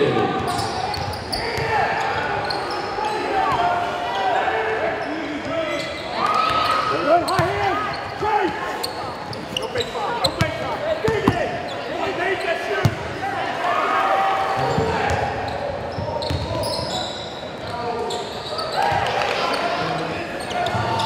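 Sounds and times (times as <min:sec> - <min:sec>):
sneakers squeaking: 0:00.4 - 0:03.8, 0:04.9 - 0:13.0, 0:14.5 - 0:21.0.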